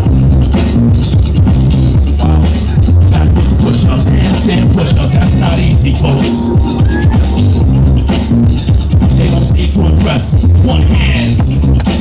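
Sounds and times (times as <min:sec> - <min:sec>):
electronic dance music: 0:00.6 - 0:11.4.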